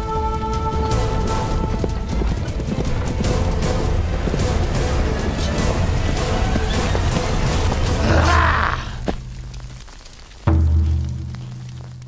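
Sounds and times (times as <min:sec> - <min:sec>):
background music: 0:00.0 - 0:12.0
cart rumbling: 0:00.0 - 0:12.0
horse hooves clopping: 0:00.0 - 0:12.0.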